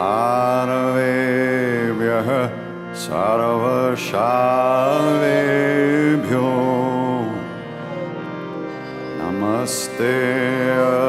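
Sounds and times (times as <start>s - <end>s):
man chanting: 0.0s - 8.1s, 9.2s - 11.0s
steady drone: 0.0s - 11.0s.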